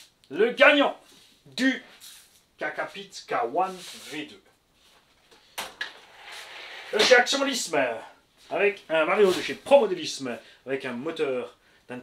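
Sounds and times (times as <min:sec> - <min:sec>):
soft rustling and scraping: 0:03.6 - 0:07.2.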